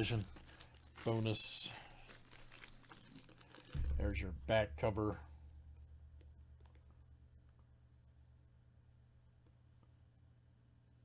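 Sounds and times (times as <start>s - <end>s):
low rumble: 3.8s - 6.2s.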